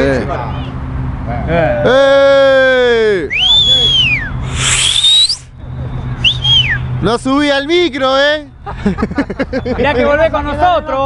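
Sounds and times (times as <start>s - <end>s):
high-pitched whistling: 3.3s - 6.9s.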